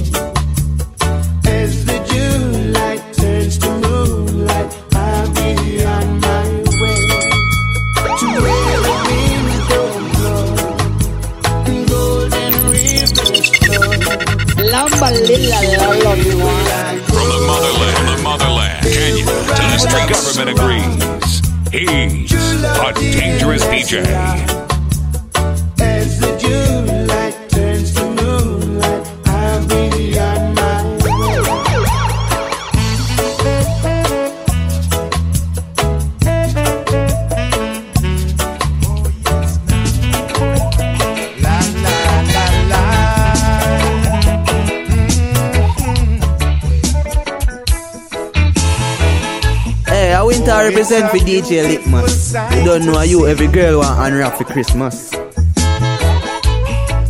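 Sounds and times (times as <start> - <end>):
reggae bass line: 0.0 - 57.0
siren sound effect wailing: 8.0 - 10.5, 12.5 - 17.2, 31.0 - 33.3.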